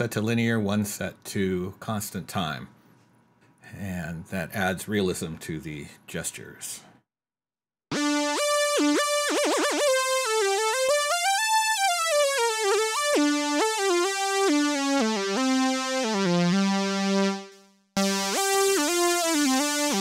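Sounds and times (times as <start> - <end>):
synth lead melody with glide: 7.9 - 20.0.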